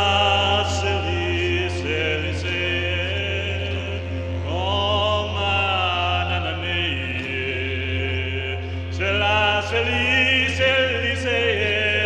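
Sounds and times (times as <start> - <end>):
didgeridoo drone: 0.0 - 12.0.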